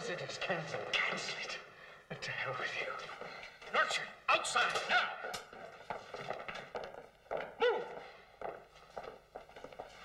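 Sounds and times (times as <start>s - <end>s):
footsteps on hard floor: 5.2s - 10.0s.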